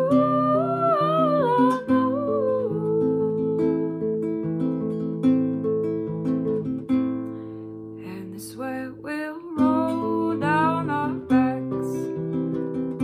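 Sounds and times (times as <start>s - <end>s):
woman singing: 0.0s - 4.3s, 8.0s - 12.2s
acoustic guitar: 0.0s - 13.0s.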